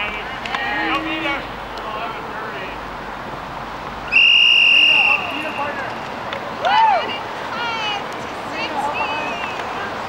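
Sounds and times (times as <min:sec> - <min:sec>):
referee's whistle blast: 0:04.1 - 0:05.8.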